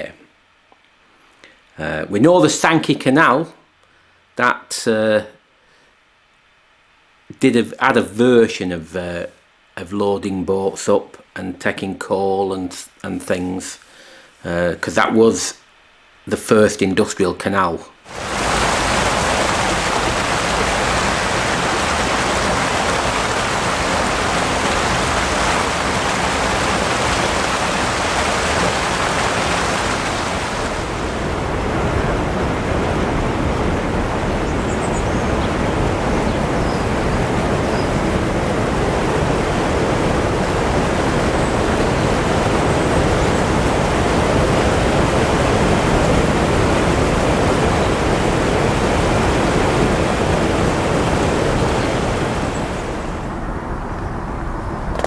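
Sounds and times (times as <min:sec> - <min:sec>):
water tumbling through lock chamber: 0:18.1 - 0:53.3.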